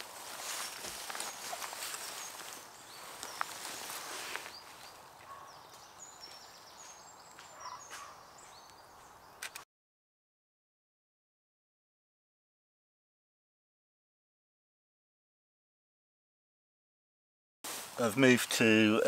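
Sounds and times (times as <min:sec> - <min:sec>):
rustling in dry leaves: 0:00.0 - 0:05.2, 0:17.7 - 0:18.5
faint birds chirping: 0:00.1 - 0:09.6.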